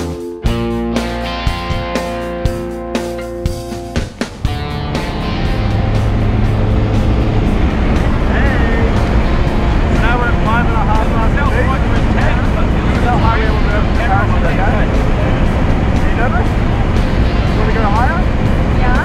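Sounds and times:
guitar music: 0.0 - 19.0
airplane cabin engine noise: 4.2 - 19.0
voices talking: 4.6 - 19.0.

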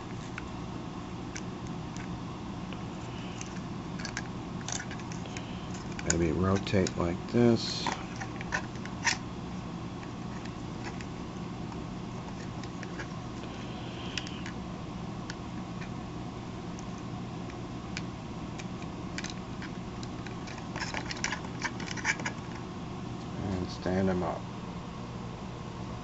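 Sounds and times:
low room hum: 0.0 - 26.0
plastic toy parts clicking: 5.7 - 7.0, 18.0 - 22.5.

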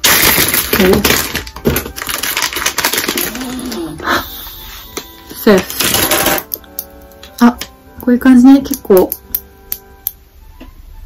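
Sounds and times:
plastic packaging crinkling: 0.0 - 4.0, 5.6 - 6.8.

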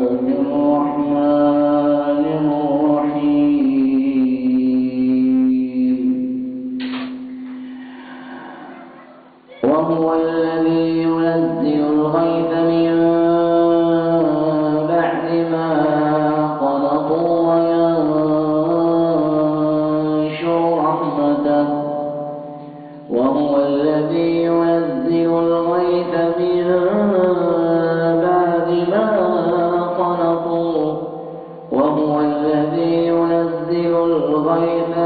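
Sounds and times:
man chanting recitation: 0.0 - 7.7, 8.7 - 35.0.

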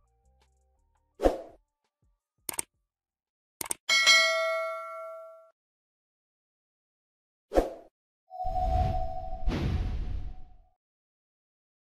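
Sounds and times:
bell-like chime: 3.9 - 5.5.

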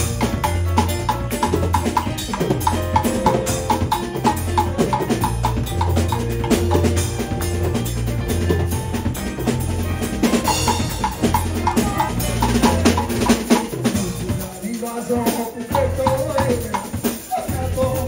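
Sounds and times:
electric bass line: 0.0 - 14.5
drum kit: 0.0 - 18.0
piano: 0.0 - 18.0.

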